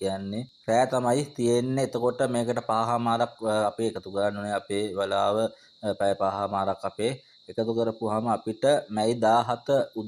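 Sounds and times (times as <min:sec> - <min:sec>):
faint high-pitched tone: 0:00.0 - 0:10.0
man speaking: 0:00.0 - 0:10.0.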